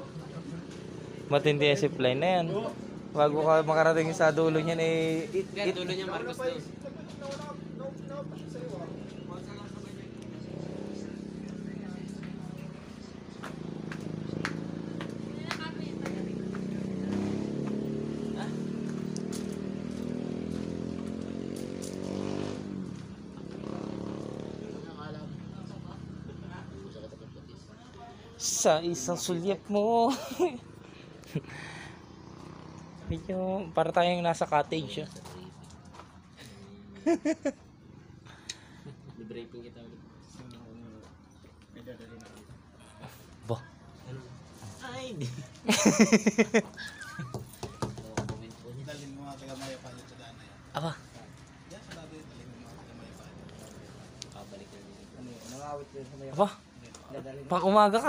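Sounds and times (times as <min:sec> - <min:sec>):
motorcycle engine running: 0:00.0 - 0:27.4, 0:30.5 - 0:36.4
voices: 0:00.0 - 0:58.0
men laughing heartily: 0:30.0 - 0:32.1, 0:36.8 - 0:39.2, 0:45.2 - 0:48.0.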